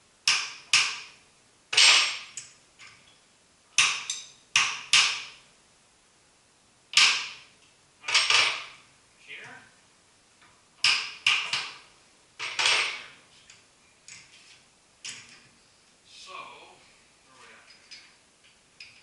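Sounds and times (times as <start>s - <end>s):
metal-on-metal clanks: 3.8s - 5.4s, 8.1s - 8.8s, 12.4s - 13.1s.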